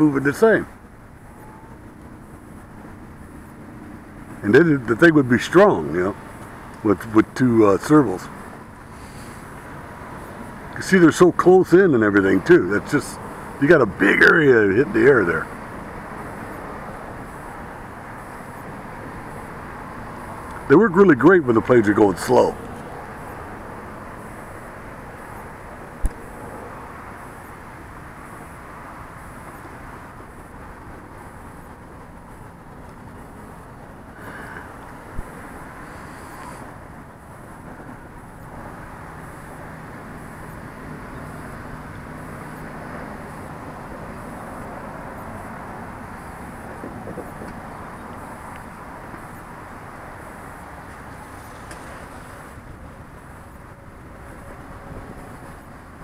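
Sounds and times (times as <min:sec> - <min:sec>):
distant model plane propeller drone: 0:00.0 - 0:56.0
outdoor rumble: 0:00.0 - 0:56.0.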